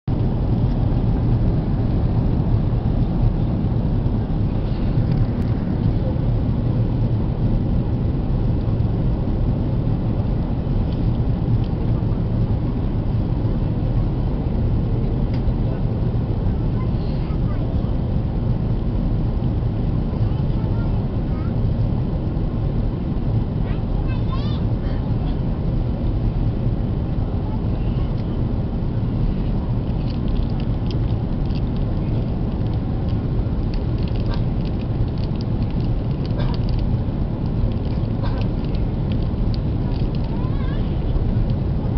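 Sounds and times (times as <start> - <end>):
airplane cabin engine rumble: 0.0 - 41.9
faint voices: 39.8 - 41.4.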